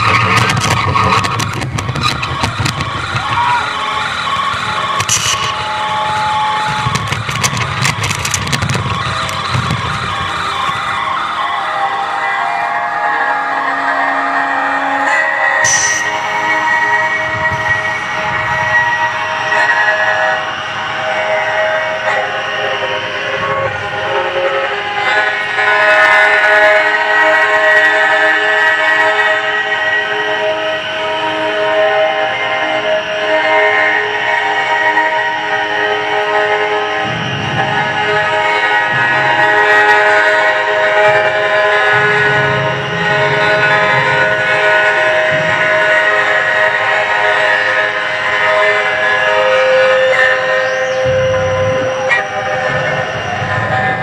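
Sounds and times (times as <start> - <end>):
crackly noise: 0.0 - 12.1
sustained horn-like drone tones: 0.0 - 54.0.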